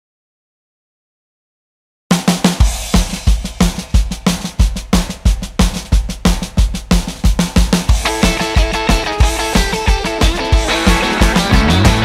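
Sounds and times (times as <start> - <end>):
rock drum beat: 2.1 - 12.0
snare drum hits: 2.1 - 12.0
bass drum hits: 10.5 - 12.0.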